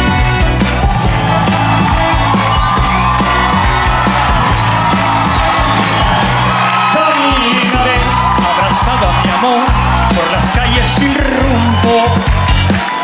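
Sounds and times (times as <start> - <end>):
audience whooping and cheering: 0.0 - 13.0
live band playing: 0.0 - 13.0.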